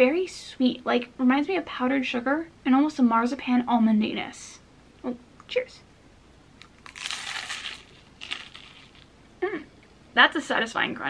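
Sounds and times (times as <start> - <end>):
crisp pastry crunching: 6.6 - 9.1
small crackles: 6.6 - 9.1.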